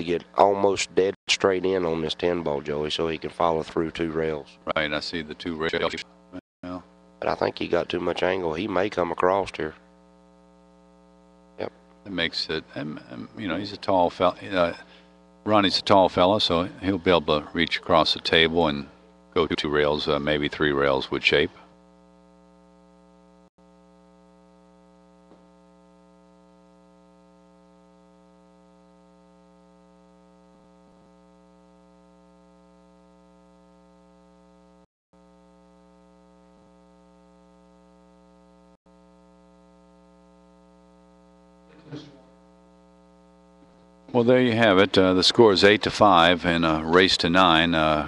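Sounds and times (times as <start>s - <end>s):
electrical mains hum: 0.0s - 48.0s.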